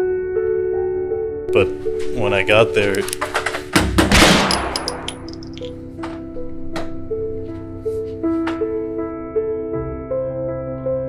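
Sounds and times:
soft slow piano music: 0:00.0 - 0:03.8, 0:05.4 - 0:11.0
fist banging on door: 0:03.2 - 0:04.7.

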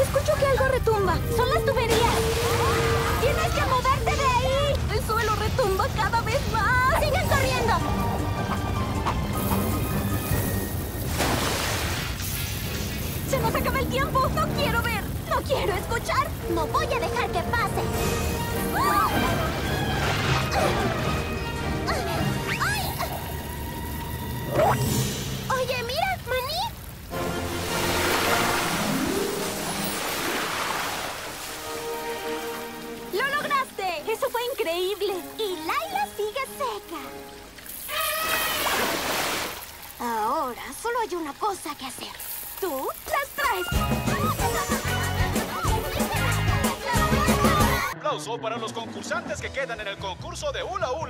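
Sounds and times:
water gushing: 0:00.0 - 0:48.0
cartoon music: 0:15.6 - 0:25.1, 0:43.4 - 0:48.1.

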